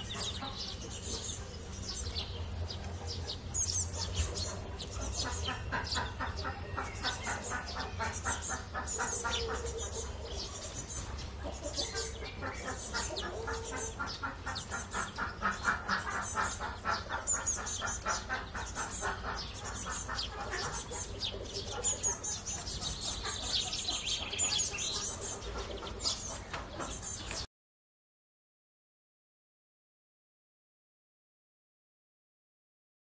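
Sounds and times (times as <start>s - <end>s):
hens clucking: 0.0s - 27.5s
small birds chirping: 0.0s - 27.5s.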